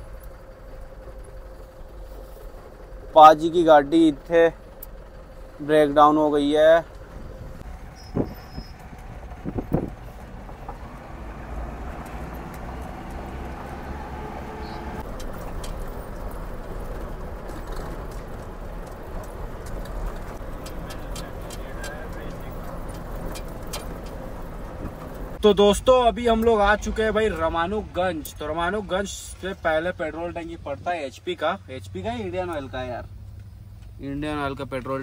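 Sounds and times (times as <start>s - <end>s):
truck engine and road rumble: 0.0s - 35.0s.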